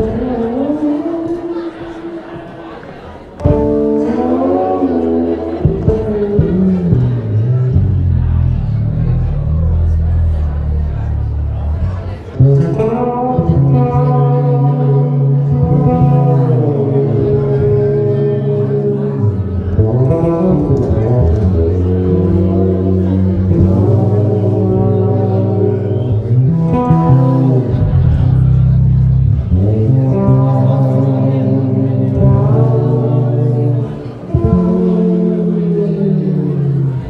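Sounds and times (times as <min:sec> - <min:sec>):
live band playing chords: 0:03.4 - 0:37.0.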